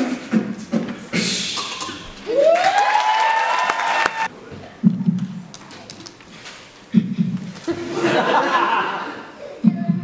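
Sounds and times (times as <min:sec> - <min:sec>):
audience applauding and cheering: 0:02.2 - 0:04.3
person whooping: 0:02.3 - 0:04.3.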